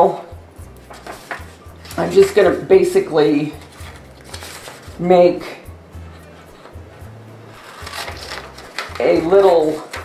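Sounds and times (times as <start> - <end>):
scissors cutting thick paper: 3.6 - 5.0, 7.5 - 10.0.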